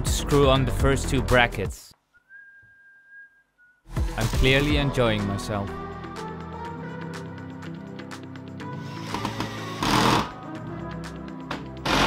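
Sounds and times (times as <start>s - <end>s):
background music: 0.0s - 1.9s, 3.9s - 12.0s
cordless drill driving screws: 8.8s - 10.4s.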